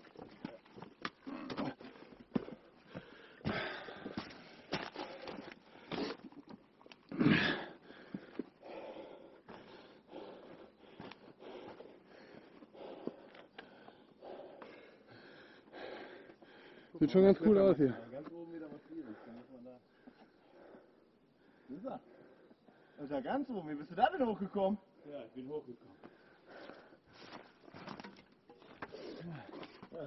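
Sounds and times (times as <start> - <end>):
footsteps on rocky ground: 0.0 - 7.0, 7.9 - 14.8
person breathing hard: 1.8 - 6.2, 7.2 - 17.0, 19.0 - 23.0, 26.0 - 27.2.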